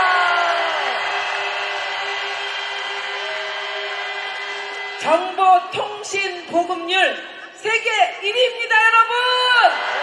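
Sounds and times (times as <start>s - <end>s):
crowd cheering and shouting: 0.0s - 5.6s, 7.8s - 10.0s.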